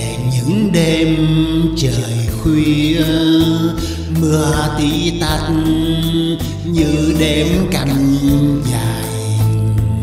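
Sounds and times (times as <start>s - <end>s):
instrumental backing music: 0.0s - 10.0s
person singing slow ballad: 0.0s - 10.0s.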